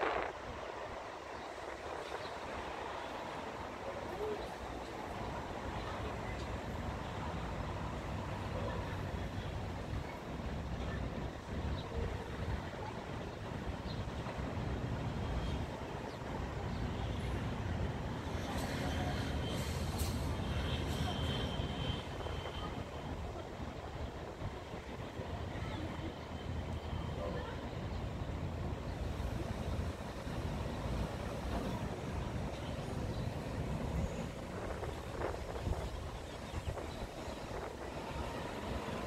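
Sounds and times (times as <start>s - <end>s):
truck engines rumbling: 0.0s - 39.0s.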